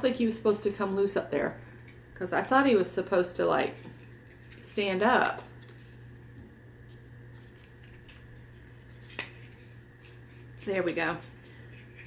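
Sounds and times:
steady low hum: 0.0 - 12.0
paper rustling and crinkling: 8.8 - 12.0.

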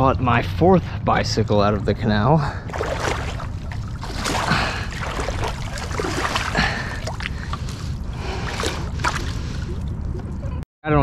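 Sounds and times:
steady low rumble: 0.0 - 11.0
water splashing and dripping: 2.6 - 10.4.

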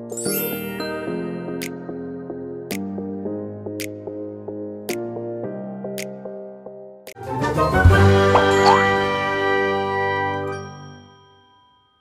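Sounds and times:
bell-like logo jingle chord: 0.0 - 1.6.

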